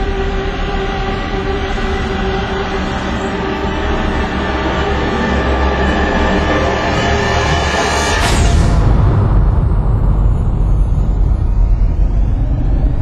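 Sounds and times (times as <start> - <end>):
deep rumble: 0.0 - 13.0
dramatic film music held tones: 0.0 - 13.0.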